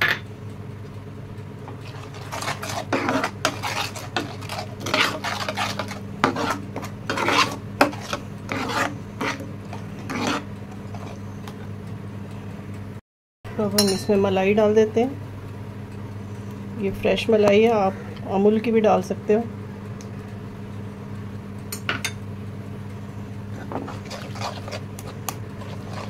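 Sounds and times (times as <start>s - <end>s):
steady low hum: 0.0s - 26.0s
spoon stirring and scraping pan: 1.7s - 11.8s, 23.5s - 26.0s.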